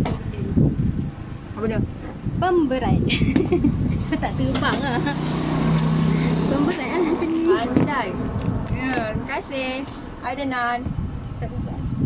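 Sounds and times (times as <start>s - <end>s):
vehicle engine running: 3.6s - 9.8s.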